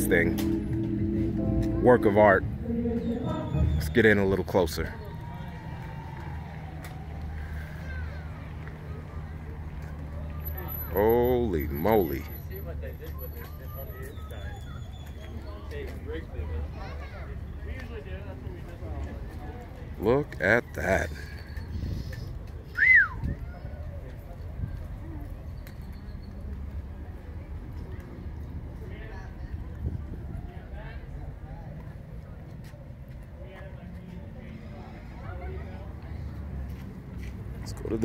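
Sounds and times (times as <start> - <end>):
low outdoor rumble: 0.0 - 13.8
faint voices: 0.0 - 38.0
outdoor background noise: 0.0 - 38.0
whistled note: 22.8 - 23.2.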